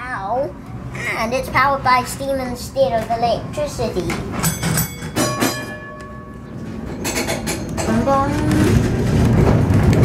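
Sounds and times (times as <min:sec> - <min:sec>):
tram gong ringing: 0:04.4 - 0:09.2.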